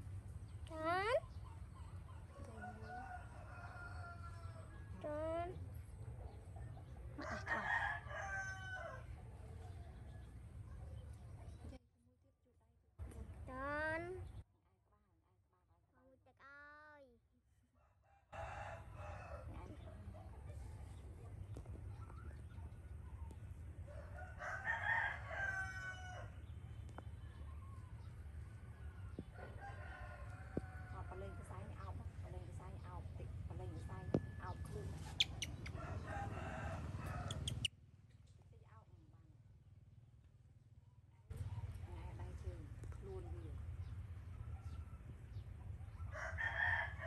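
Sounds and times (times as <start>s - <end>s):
rooster crowing: 7.2s - 9.1s, 18.3s - 19.5s, 23.9s - 26.3s, 35.7s - 37.7s, 46.0s - 47.0s.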